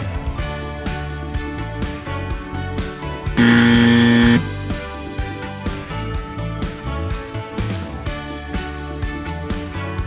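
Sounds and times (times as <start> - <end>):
background music: 0.0 - 10.0
low buzzer tone: 3.4 - 4.6.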